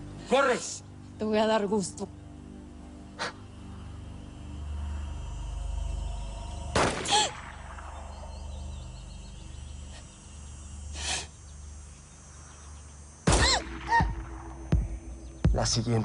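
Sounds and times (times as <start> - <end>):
low rumbling drone: 0.9 - 16.0.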